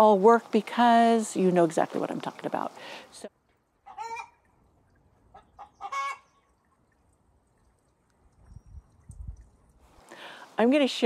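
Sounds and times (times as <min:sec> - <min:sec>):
chicken clucking: 0:05.3 - 0:06.2.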